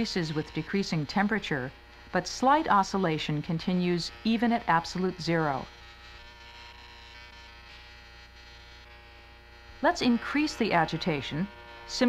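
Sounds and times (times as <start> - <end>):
steady electric hum: 0.0 - 12.0.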